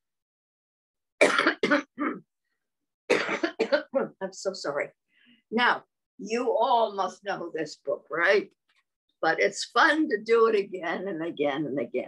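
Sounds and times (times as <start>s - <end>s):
woman coughing: 1.2s - 2.3s, 3.1s - 4.2s.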